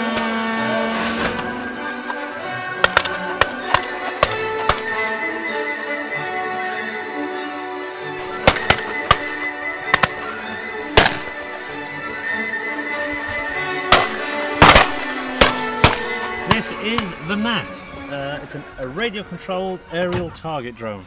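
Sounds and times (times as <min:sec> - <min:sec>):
background music: 0:00.0 - 0:21.0
shotgun shots: 0:02.8 - 0:05.0, 0:08.2 - 0:10.3, 0:11.0 - 0:11.4, 0:13.8 - 0:17.1.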